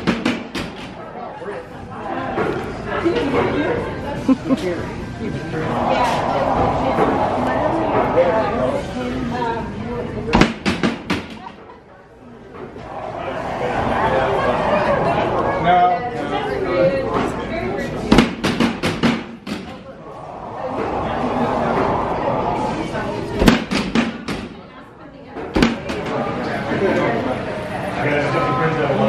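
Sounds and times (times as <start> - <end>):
people's voices: 0.9 - 29.0
loud slams: 23.4 - 24.6.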